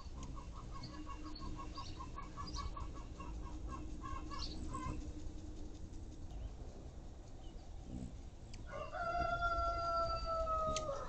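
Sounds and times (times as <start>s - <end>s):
rooster crowing: 8.6s - 11.0s.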